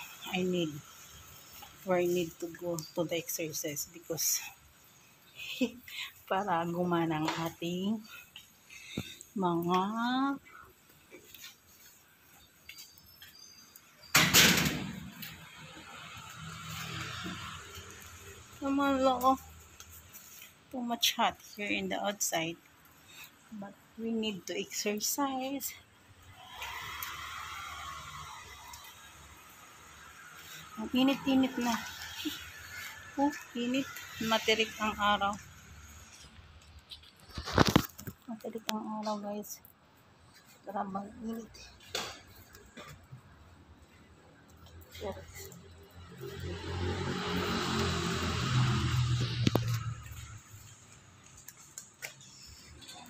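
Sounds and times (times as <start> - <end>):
vehicle passing: 15.0 - 19.8, 26.2 - 36.6, 42.4 - 53.0.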